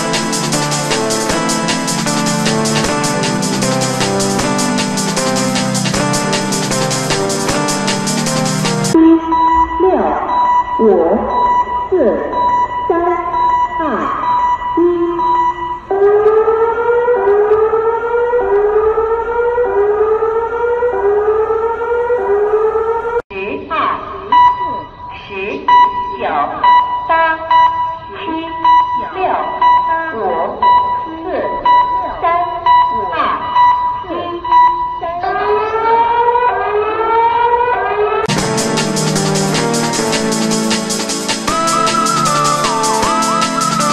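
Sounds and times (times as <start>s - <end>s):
music: 0.0s - 9.0s, 38.3s - 43.9s
rising whooping alarm: 0.0s - 23.2s, 25.7s - 43.9s
steady beeping alarm tone: 0.0s - 23.2s, 24.2s - 43.9s
voice over loudspeakers: 34.1s - 38.0s.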